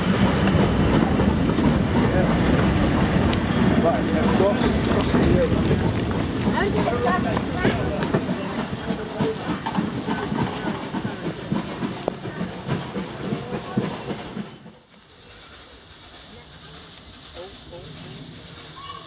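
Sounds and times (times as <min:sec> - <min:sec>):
train wheels clicking over rail joints: 0:00.0 - 0:19.0
people talking: 0:01.9 - 0:03.0, 0:03.6 - 0:14.4, 0:15.2 - 0:19.0.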